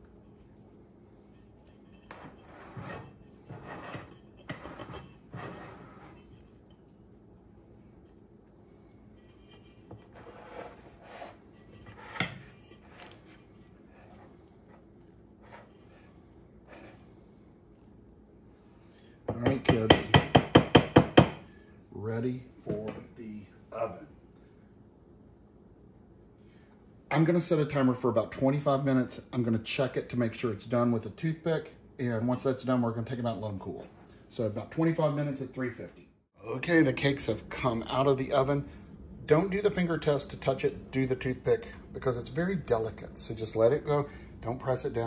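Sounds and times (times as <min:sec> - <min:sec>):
spatula scraping metal pan: 0:01.2 - 0:06.6, 0:09.0 - 0:14.8.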